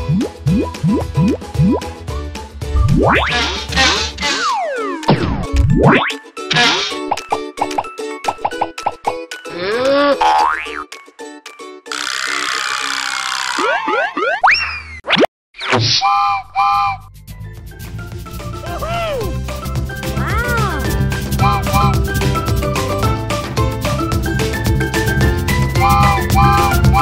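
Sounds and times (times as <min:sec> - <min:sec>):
cheerful children's music: 0:00.0 - 0:11.9, 0:16.6 - 0:27.0
springy cartoon boings: 0:11.9 - 0:17.1
slide whistle glides: 0:16.0 - 0:17.1.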